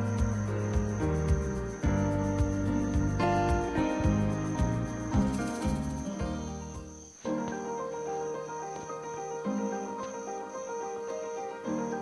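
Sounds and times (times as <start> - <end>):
instrumental music: 0.0 - 12.0.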